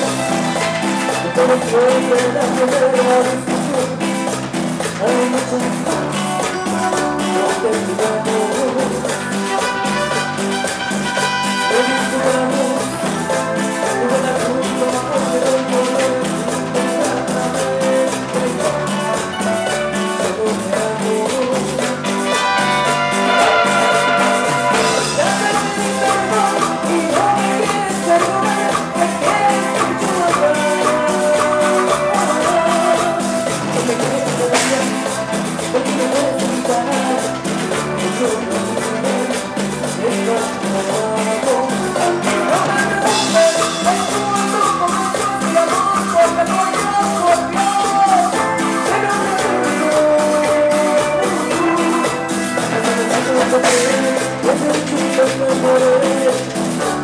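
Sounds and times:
latin dance band with keyboard: 0:00.0 - 0:57.0.

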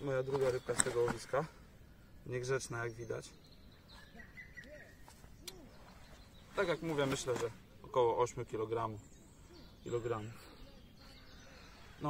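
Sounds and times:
faint low bird calls: 0:00.0 - 0:12.0.

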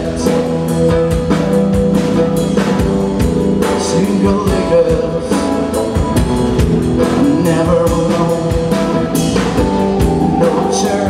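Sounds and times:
blues band playing: 0:00.0 - 0:11.0
drum kit steady beat: 0:00.0 - 0:11.0
electric guitar: 0:00.0 - 0:11.0
keyboard: 0:00.0 - 0:11.0.

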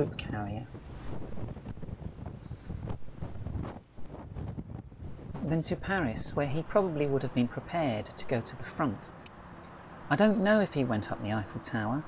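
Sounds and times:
wind buffeting microphone: 0:00.0 - 0:09.2.

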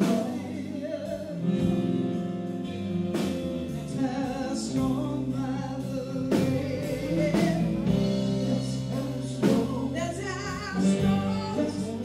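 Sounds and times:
woman singing: 0:00.0 - 0:02.3, 0:03.6 - 0:12.0
live rock band: 0:00.0 - 0:12.0.

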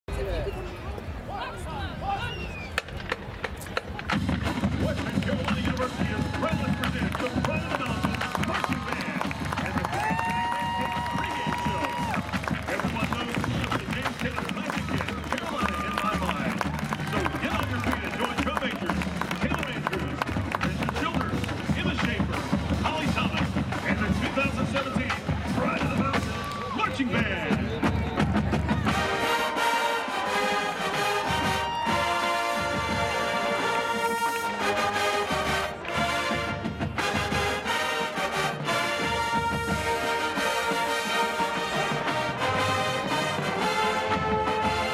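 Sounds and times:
spectators talking: 0:00.0 - 0:44.9
drumline playing marching cadence: 0:02.7 - 0:44.9.

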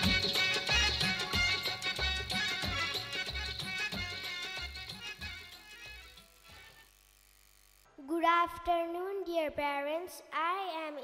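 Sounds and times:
child speaking over a pa: 0:08.0 - 0:11.0.

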